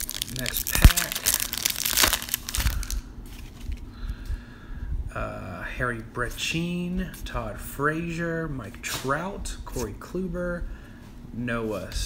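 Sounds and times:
foil wrapper tearing and crinkling: 0.0s - 3.8s.

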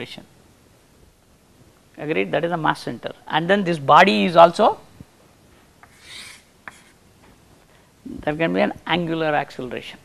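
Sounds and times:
chalk scraping on chalkboard: 5.8s - 7.0s
chalk tapping on board: 5.8s - 7.0s.

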